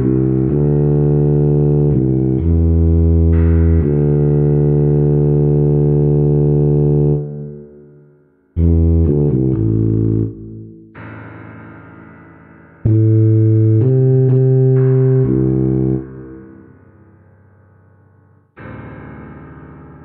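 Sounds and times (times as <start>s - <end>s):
tuba playing: 0.0s - 7.7s, 8.6s - 10.8s, 12.9s - 16.9s.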